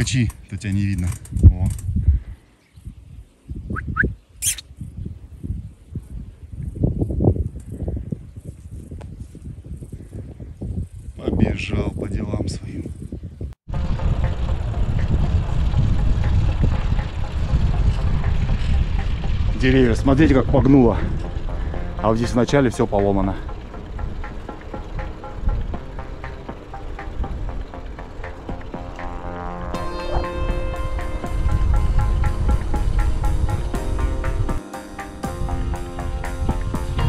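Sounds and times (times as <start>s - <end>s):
wind buffeting microphone: 0.0s - 29.2s, 30.1s - 34.6s, 35.2s - 37.0s
wind rush while cycling: 0.0s - 37.0s
brief high chirp: 3.8s - 4.6s.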